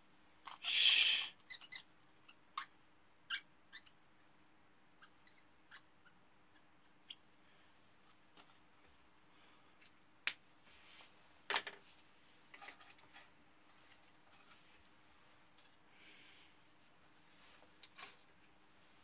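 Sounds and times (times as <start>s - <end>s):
soft rustling: 10.6s - 16.1s, 16.7s - 19.0s.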